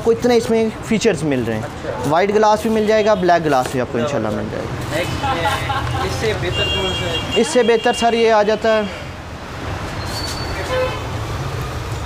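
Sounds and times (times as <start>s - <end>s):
road traffic rumble: 0.0s - 12.0s
vehicle horn toot: 6.4s - 8.1s, 10.6s - 11.1s.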